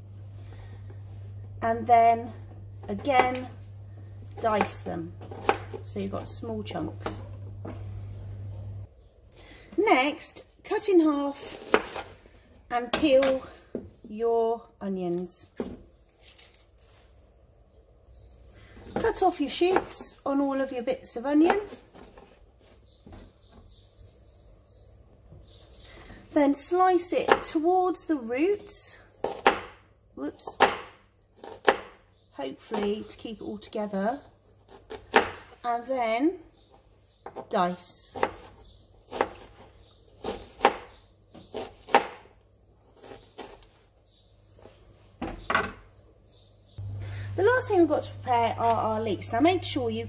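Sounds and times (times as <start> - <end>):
knife chopping on plastic board: 29.2 - 29.8.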